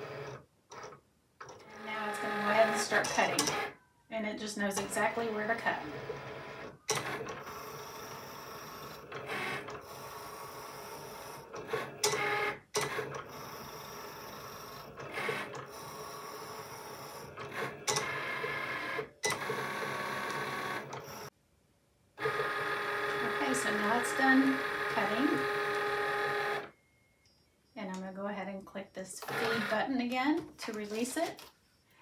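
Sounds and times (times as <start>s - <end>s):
cutting machine motors whirring: 1.5s - 3.7s, 4.7s - 21.3s, 22.2s - 26.7s, 29.2s - 29.9s.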